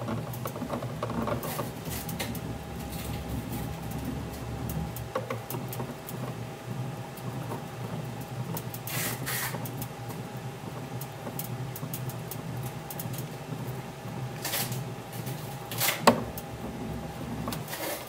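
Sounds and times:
machine mechanical hum: 0.0 - 18.0
hissing bursts: 8.9 - 9.6.

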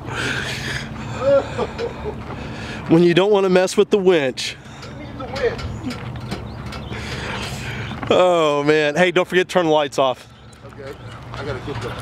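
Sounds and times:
car engine running low: 0.0 - 12.0.

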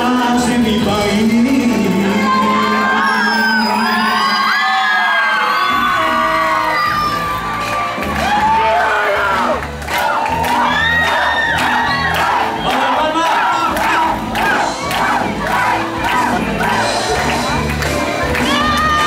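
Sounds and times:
crowd shouting and whooping: 2.0 - 19.0
high drawn-out cries: 2.4 - 7.5
folk dance backing track: 5.5 - 19.0.

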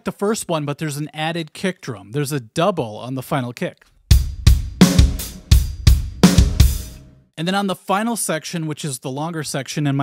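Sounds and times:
kick drum: 4.1 - 6.9
hi-hat and cymbal wash: 4.1 - 7.0.

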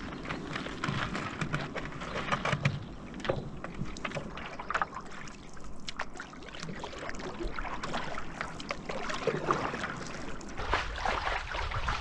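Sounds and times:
paddle dipping and pulling: 0.0 - 12.0
small water splashes: 0.0 - 12.0
water lapping at board: 0.0 - 12.0.

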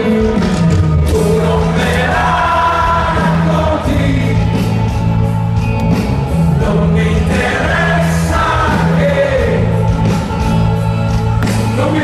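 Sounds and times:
live rock band with singing: 0.0 - 12.0.

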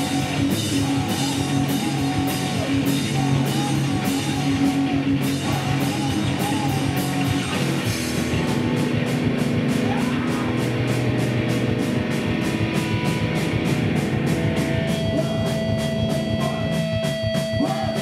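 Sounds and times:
drum kit: 0.0 - 18.0
electric guitars: 0.0 - 18.0.

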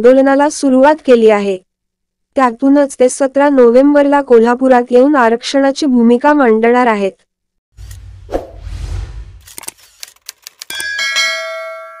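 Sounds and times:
quick clicks: 9.4 - 10.9
bright bell chime: 10.7 - 12.0.

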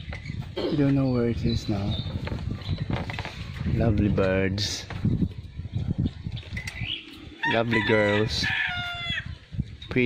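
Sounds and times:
bird chirp: 0.0 - 4.0, 5.4 - 7.5.

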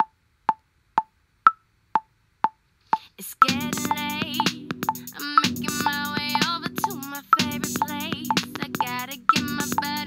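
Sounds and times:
metronome clicking: 3.4 - 10.0.

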